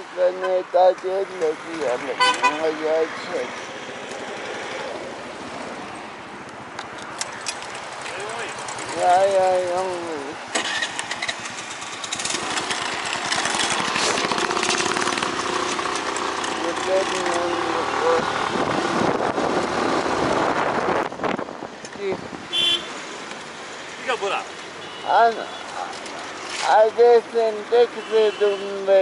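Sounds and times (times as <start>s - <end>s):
scooter engine running: 7.6s - 19.8s
wind on microphone: 18.3s - 22.5s.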